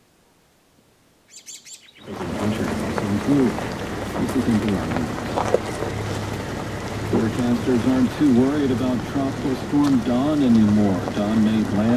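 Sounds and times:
small bird chirping: 1.3 - 2.2
person speaking: 2.0 - 5.2.

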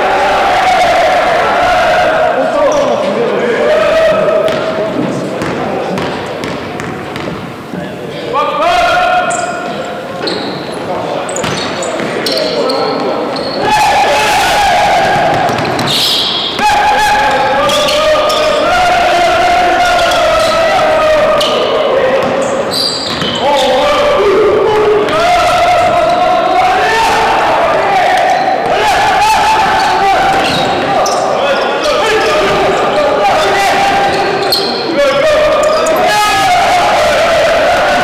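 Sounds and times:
players shouting: 0.0 - 6.6, 8.2 - 38.0
basketball bouncing on hardwood floor: 4.5 - 4.7, 5.4 - 7.5, 23.1 - 23.4.

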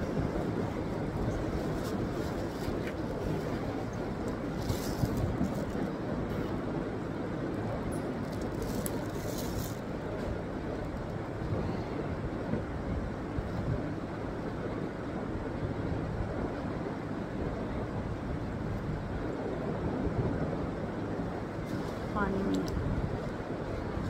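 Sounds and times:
low rushing background noise: 0.0 - 24.0
plastic rustling: 8.2 - 9.8.

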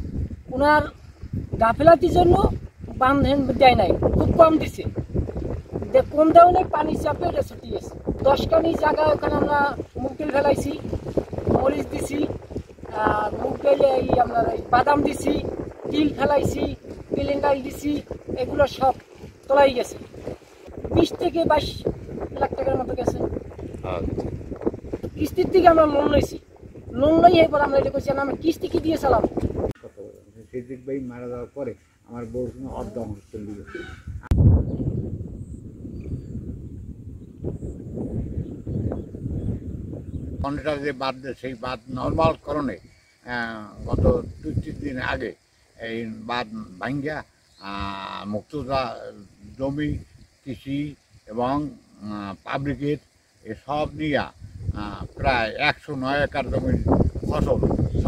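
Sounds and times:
man speaking: 23.8 - 24.2, 29.8 - 33.9, 40.4 - 57.8.

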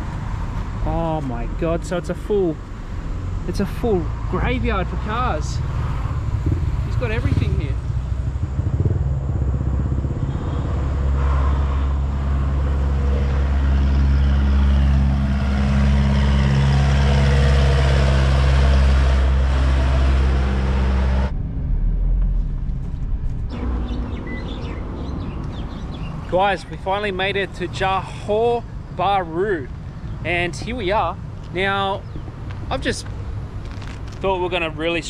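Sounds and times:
car engine and road noise: 0.0 - 35.0
outdoor ambience: 0.0 - 35.0.

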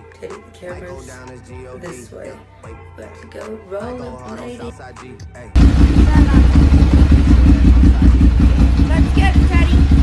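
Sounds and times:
motorcycle engine running: 5.6 - 10.0.

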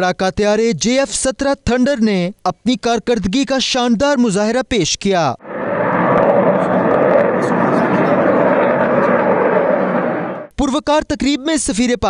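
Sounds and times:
fighter jet engine: 5.4 - 10.5.

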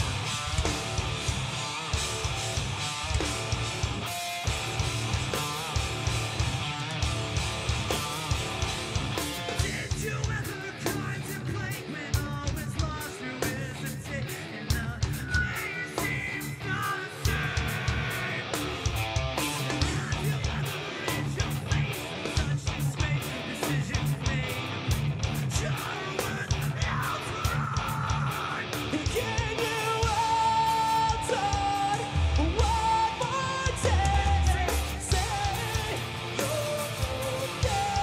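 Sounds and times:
busy drumming: 0.0 - 38.0
distorted electric guitars: 0.0 - 38.0
vocalist screaming and singing: 0.0 - 38.0.

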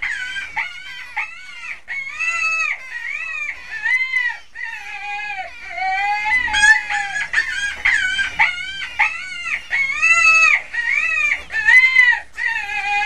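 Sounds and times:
shrill animal calls: 0.0 - 13.0.

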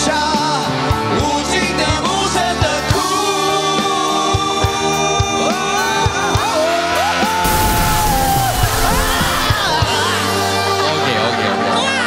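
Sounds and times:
band backing track: 0.0 - 12.0
crowd rush with yells: 6.8 - 10.4.

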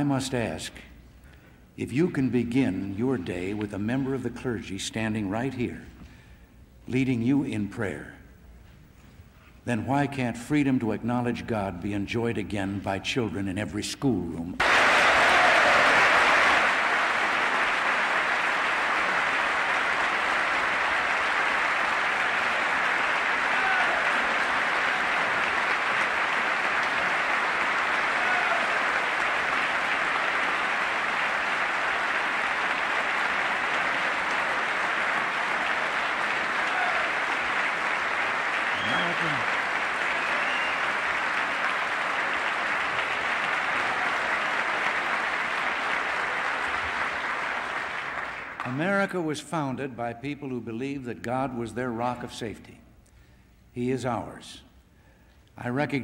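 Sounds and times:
audience applause: 14.6 - 48.8.

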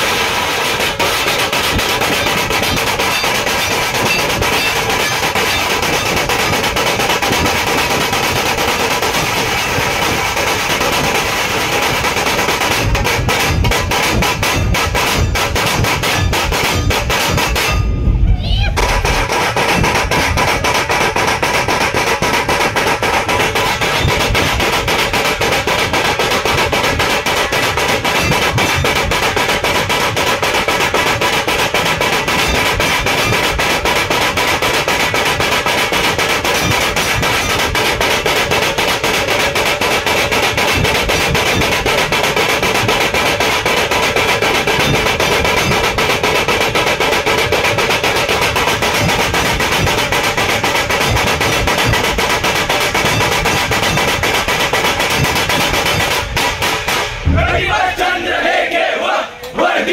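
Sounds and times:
dhol drums beating: 0.0 - 58.0.

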